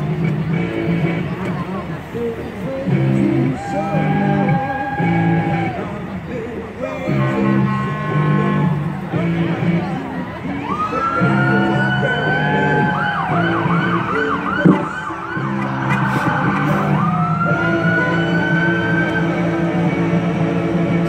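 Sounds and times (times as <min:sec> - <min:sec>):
music: 0:00.0 - 0:21.0
electronic siren wailing and yelping: 0:10.6 - 0:19.7.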